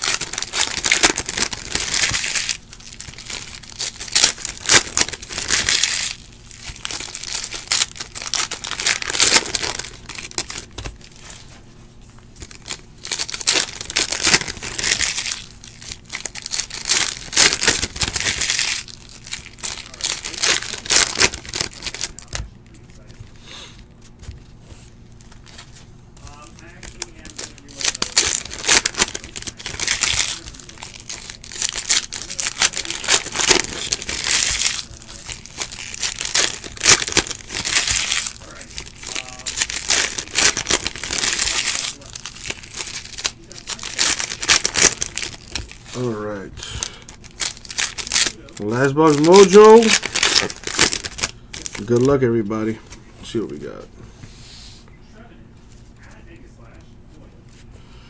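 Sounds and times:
card pack wrappers tearing: 0.0 - 11.4, 12.4 - 23.1, 25.3 - 53.8
cards being handled: 46.8 - 53.8.

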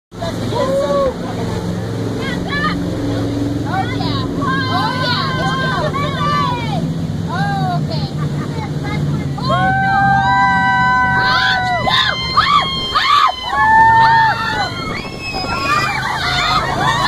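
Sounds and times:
boat engine drone: 0.1 - 17.0
passengers whooping and shouting: 0.4 - 1.3, 4.0 - 6.8, 9.4 - 17.0
people cheering: 0.5 - 1.2, 4.6 - 6.6, 9.4 - 17.0.

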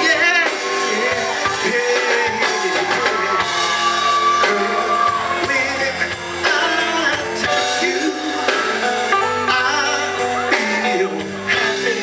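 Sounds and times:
funk band playing: 0.0 - 12.0
person singing: 0.0 - 12.0.

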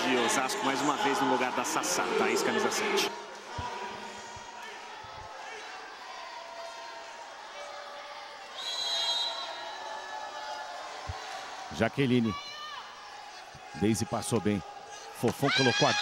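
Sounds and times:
arena crowd noise: 0.0 - 16.0.

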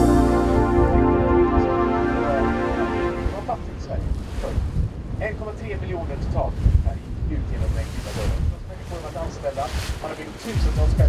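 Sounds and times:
wind buffeting microphone: 3.2 - 11.0.

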